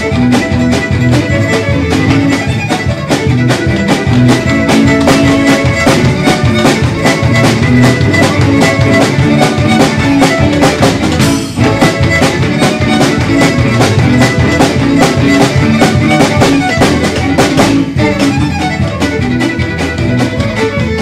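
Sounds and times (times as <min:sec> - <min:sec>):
string band playing fiddle tune: 0:00.0 - 0:21.0.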